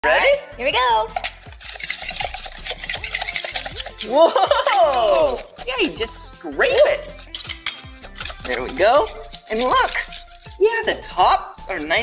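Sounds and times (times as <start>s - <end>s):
metal scraper scraping wax: 1.0s - 12.0s.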